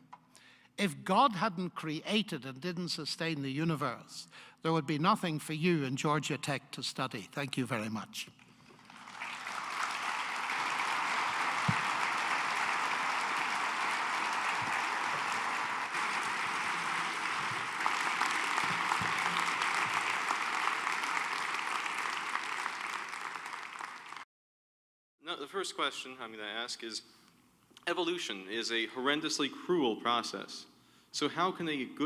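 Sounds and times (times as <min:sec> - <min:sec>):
audience applauding: 0:08.7 - 0:24.2.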